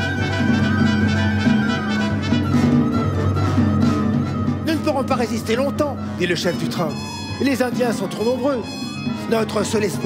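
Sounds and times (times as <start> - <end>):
symphony orchestra playing: 0.0 - 10.0.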